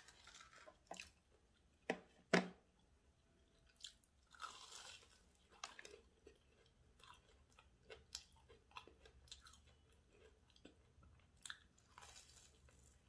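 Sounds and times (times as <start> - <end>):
chewing crunchy food: 3.5 - 13.0.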